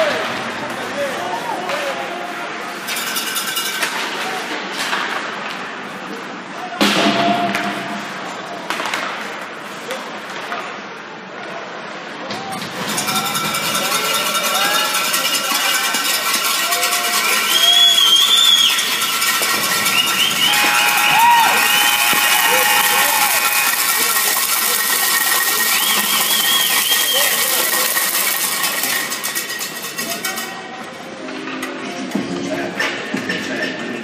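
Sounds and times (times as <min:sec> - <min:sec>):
crowd cheering and shouting: 0:14.4 - 0:28.5
high whistle-like calls: 0:17.0 - 0:28.2
steady high tone: 0:17.1 - 0:27.6.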